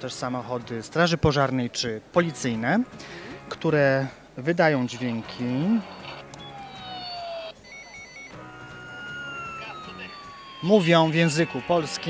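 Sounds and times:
toy ambulance electronic tones: 4.9 - 12.0
two-tone siren warble: 5.9 - 12.0.

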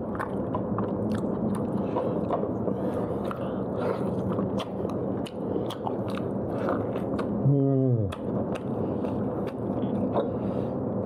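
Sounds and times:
mouth clicks and smacks: 0.0 - 10.4
biting and chewing meat: 0.0 - 11.0.

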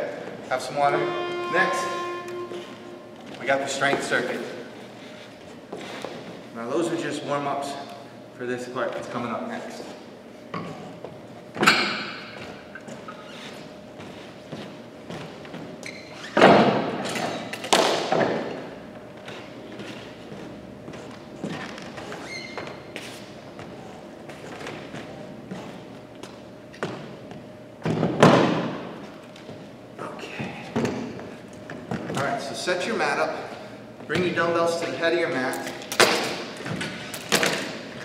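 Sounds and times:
faint steady hum: 0.0 - 38.0.

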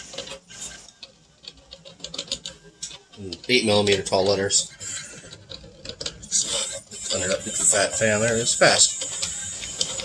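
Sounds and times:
fans humming: 0.0 - 10.0
stepper motors whirring: 0.0 - 10.0.

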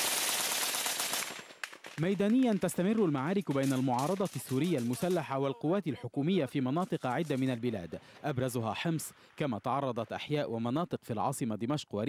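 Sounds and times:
rapid automatic gunfire: 0.0 - 5.3.

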